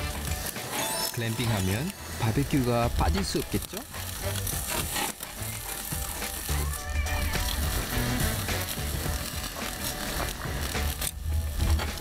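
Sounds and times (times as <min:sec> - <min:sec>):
background music: 0:00.0 - 0:12.0
meat sizzling on grill: 0:00.0 - 0:12.0.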